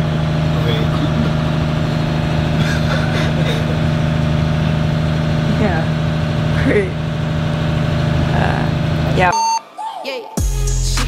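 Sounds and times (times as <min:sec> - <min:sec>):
diesel engine droning: 0:00.0 - 0:09.8.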